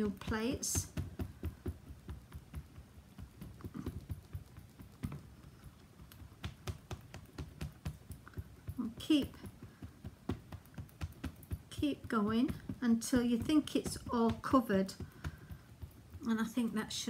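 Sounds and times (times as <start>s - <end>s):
ink pad tapping on rubber stamp: 0.0s - 17.0s.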